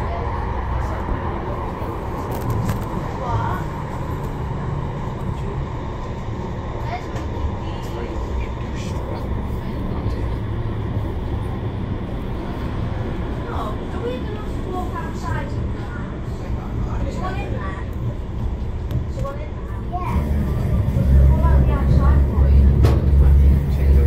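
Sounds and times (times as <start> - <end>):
faint indistinct voices: 0.0 - 24.0
tram rumble: 0.0 - 24.0.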